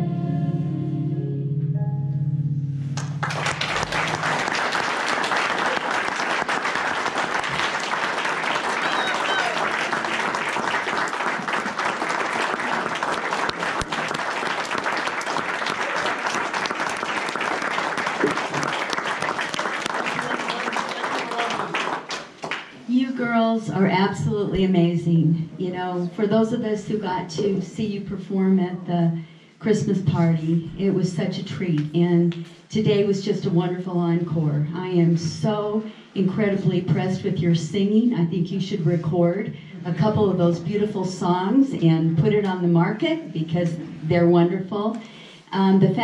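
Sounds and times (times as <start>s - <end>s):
song chord with guitar: 0.0s - 4.4s
applause: 3.0s - 22.8s.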